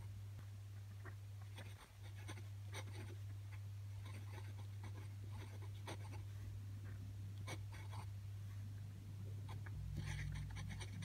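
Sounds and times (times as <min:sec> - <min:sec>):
steady low hum: 0:00.0 - 0:11.0
glass pen scratching on paper: 0:01.5 - 0:03.2, 0:04.0 - 0:06.2, 0:09.5 - 0:11.0.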